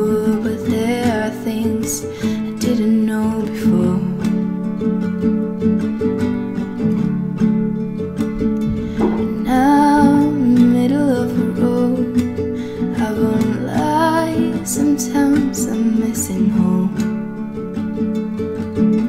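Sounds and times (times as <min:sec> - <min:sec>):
woman singing: 0:00.0 - 0:04.6, 0:08.7 - 0:17.3
acoustic guitar strumming: 0:00.0 - 0:19.0.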